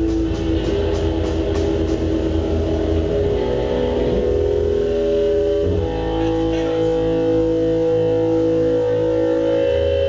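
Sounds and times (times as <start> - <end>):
electric guitar sustained tones: 0.0 - 10.0
low amplifier hum: 0.0 - 10.0.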